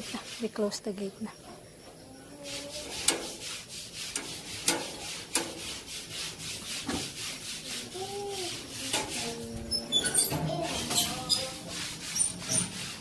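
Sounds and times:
rhythmic scraping strokes: 2.4s - 13.0s.

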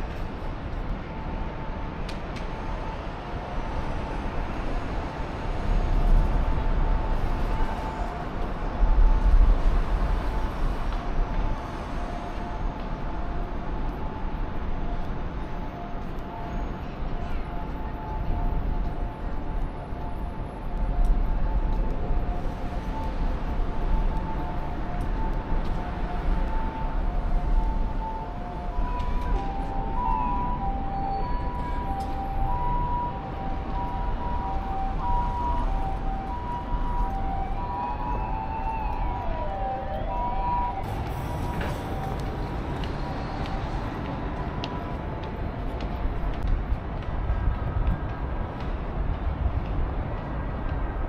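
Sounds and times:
road traffic rumble: 0.0s - 51.0s
two-tone siren: 1.0s - 45.5s.

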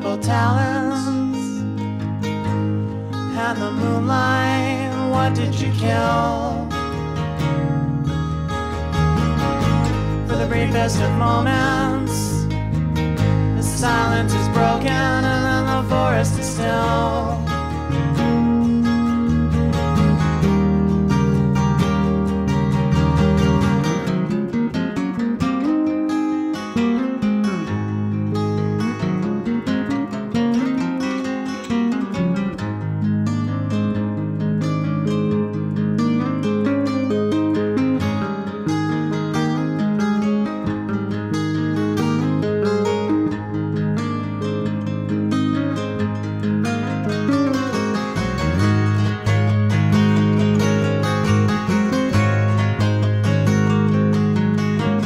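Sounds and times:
acoustic guitars picked and strummed: 0.0s - 55.0s
electric bass line: 0.0s - 55.0s.

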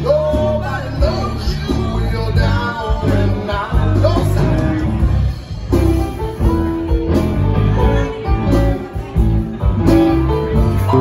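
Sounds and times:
bass guitar: 0.0s - 11.0s
drums: 0.0s - 11.0s
electric guitar: 0.0s - 11.0s
keyboard: 0.0s - 11.0s.

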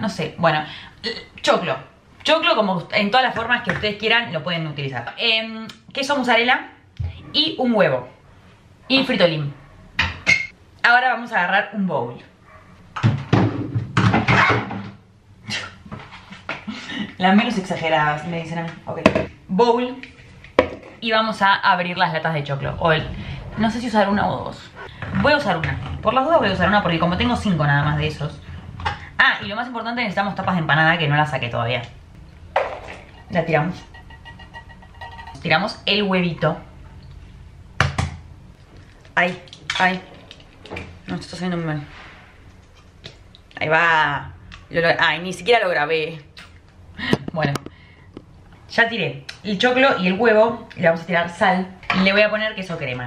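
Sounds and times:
plastic bowls knocking and rattling: 32.5s - 35.5s.

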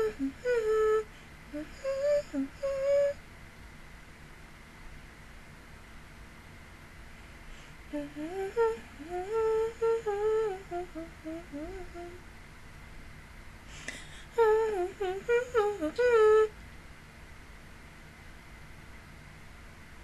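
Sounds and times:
woman humming: 0.0s - 3.2s, 7.9s - 12.2s, 13.8s - 16.5s.

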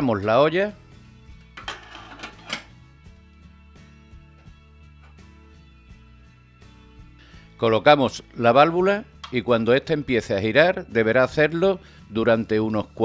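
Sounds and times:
soft background music: 0.0s - 13.0s.

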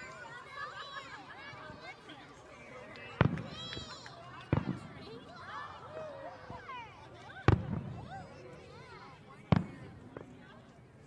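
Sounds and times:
crowd talking and calling out: 0.0s - 11.0s
firework bangs: 3.2s - 3.6s, 4.5s - 4.9s.

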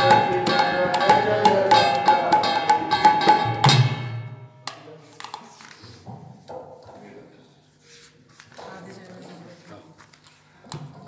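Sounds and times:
music with tabla drumming: 0.0s - 5.4s.

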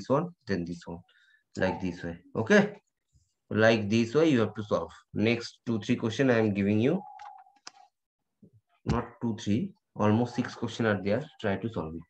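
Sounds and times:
person speaking: 0.0s - 2.8s, 8.8s - 12.0s.

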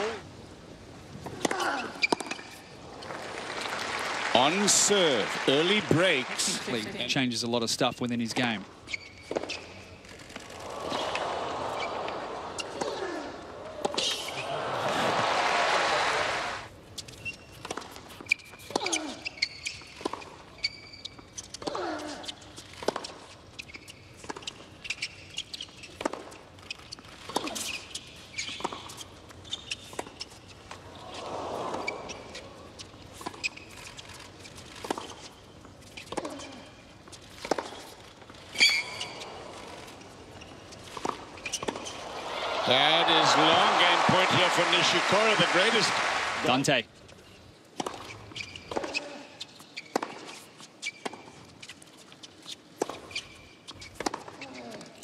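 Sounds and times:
crowd applause and cheering: 3.0s - 6.9s, 10.5s - 12.8s, 14.3s - 16.7s, 42.0s - 46.7s.

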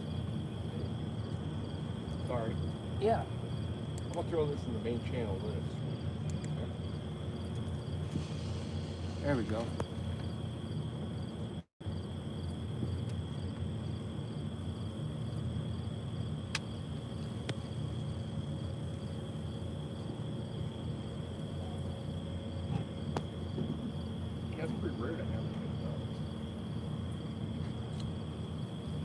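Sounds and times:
low steady rumble: 0.0s - 29.0s
night insects chirping: 0.0s - 29.0s.

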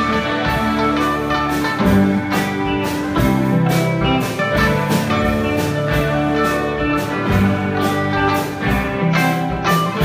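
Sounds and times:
drum kit beat: 0.0s - 10.0s
electric guitar: 0.0s - 10.0s.

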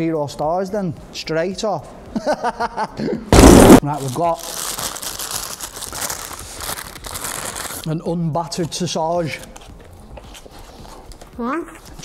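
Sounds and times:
paper wrapper crinkling: 3.8s - 8.1s.

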